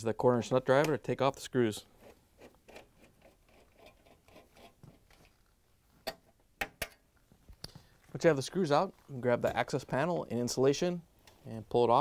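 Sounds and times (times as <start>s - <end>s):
nut driver ticking and scraping: 2.0s - 5.0s.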